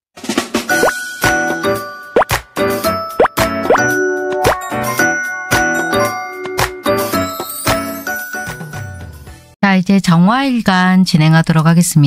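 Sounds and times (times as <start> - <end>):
rising pop sound effects: 0.7 - 1.4, 2.2 - 2.5, 3.2 - 7.8
cheerful jingle music: 0.7 - 9.6.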